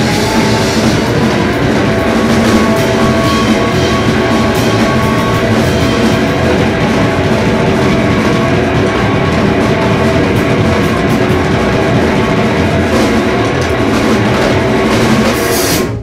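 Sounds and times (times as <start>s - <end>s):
drums: 0.0s - 16.0s
electric guitar: 0.0s - 16.0s
rock band playing live: 0.0s - 16.0s.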